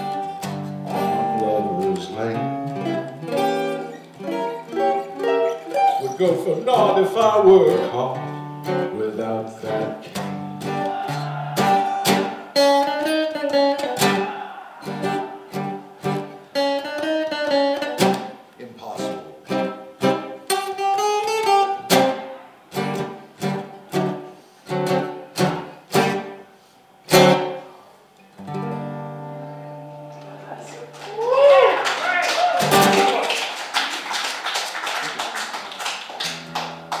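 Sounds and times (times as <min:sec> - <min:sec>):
acoustic guitar strumming: 0:00.0 - 0:27.8, 0:28.4 - 0:30.9, 0:32.6 - 0:33.2
voices: 0:09.0 - 0:15.4
clapping and cheering: 0:10.6 - 0:13.3, 0:14.0 - 0:15.6, 0:30.7 - 0:37.0.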